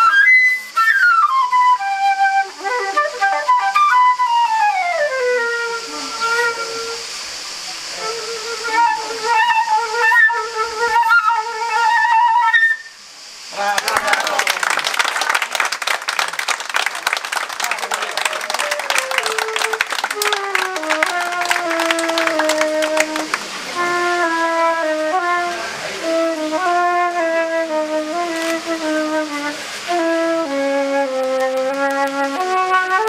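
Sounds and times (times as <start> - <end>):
solo flute melody: 0.0 - 13.1, 17.8 - 33.0
audience applauding: 13.6 - 23.8, 31.0 - 32.6.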